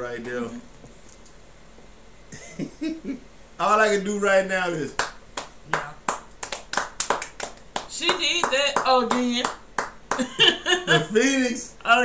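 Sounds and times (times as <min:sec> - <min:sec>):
people clapping hands: 0:04.9 - 0:10.6.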